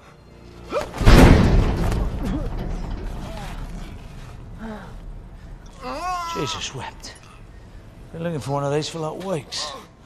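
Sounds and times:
heavy impact: 1.0s - 8.7s
low rumble: 1.0s - 9.0s
faint groans: 1.6s - 8.2s.

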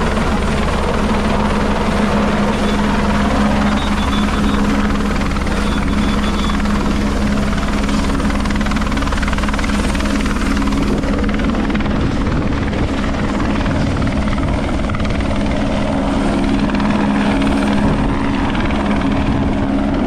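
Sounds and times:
helicopter flying overhead: 0.0s - 20.0s.

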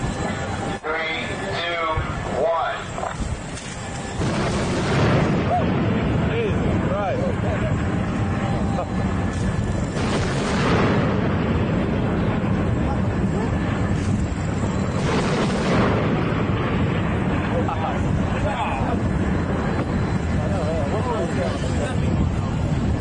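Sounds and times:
steady low rumble: 0.0s - 23.0s
heavy gun blasts: 4.2s - 6.5s, 9.9s - 12.5s, 14.8s - 17.1s.

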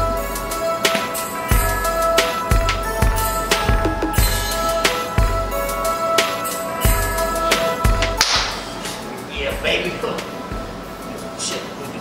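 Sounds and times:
background music: 0.0s - 12.0s
sharp crack: 8.2s - 8.6s.

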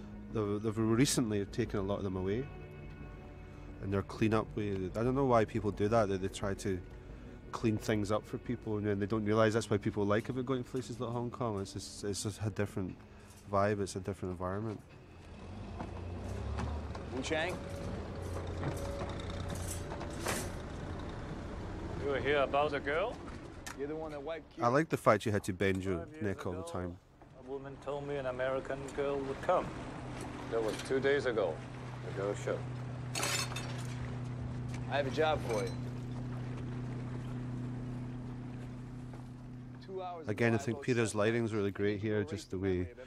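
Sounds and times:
boat engine humming: 0.0s - 24.5s, 27.1s - 43.0s
soft water wash: 27.7s - 33.1s.

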